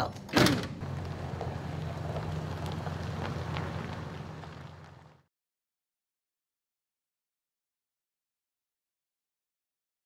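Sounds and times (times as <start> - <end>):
van engine running: 0.7 - 5.2.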